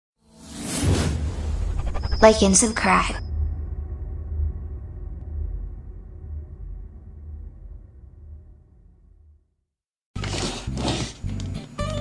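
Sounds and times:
whoosh: 0.2s - 9.5s
deep bass drone: 0.8s - 9.6s.

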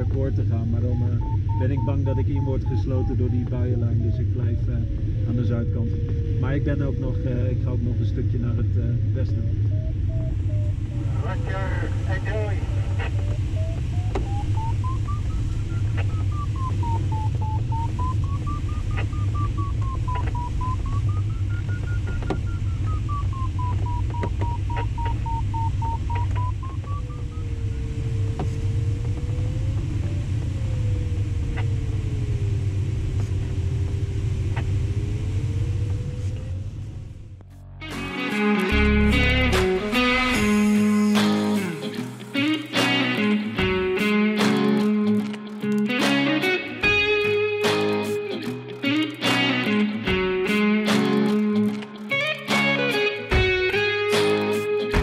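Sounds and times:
variometer tone sliding in pitch: 0.0s - 32.5s
airflow rushing in cockpit: 0.0s - 37.4s
music with electric guitar: 12.7s - 27.3s, 37.5s - 55.0s.

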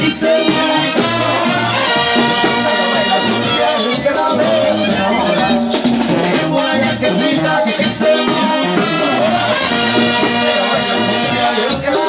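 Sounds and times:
brass band playing: 0.0s - 12.0s
drums and congas beat: 0.0s - 12.0s.

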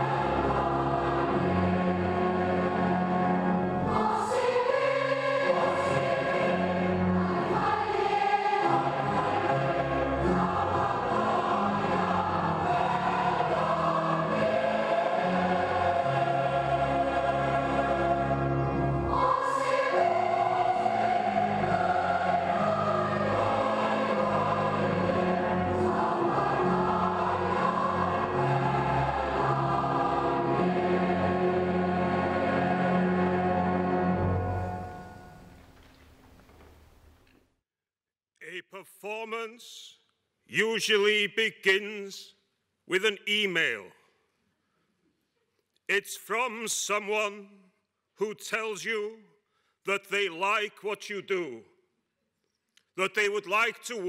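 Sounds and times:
choir singing sustained chords: 0.0s - 35.5s.

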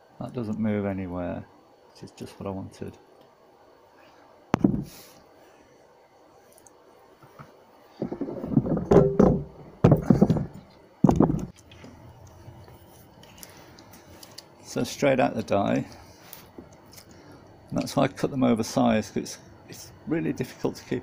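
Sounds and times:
tools knocking and clattering: 8.0s - 11.6s.

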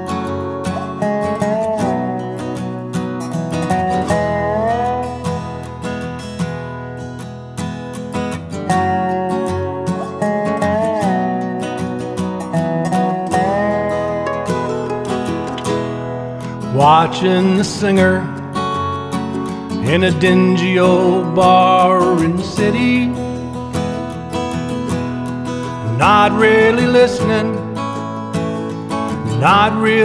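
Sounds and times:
sliding lead guitar melody: 0.0s - 30.0s
strummed acoustic guitar chords: 0.0s - 30.0s.

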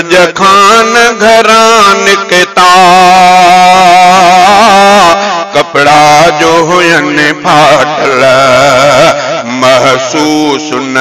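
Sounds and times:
man singing a long note: 0.0s - 11.0s.

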